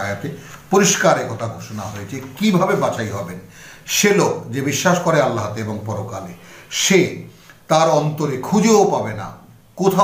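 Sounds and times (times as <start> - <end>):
man speaking: 0.0 - 10.0
sharp intake of breath: 3.4 - 3.9, 6.4 - 6.7.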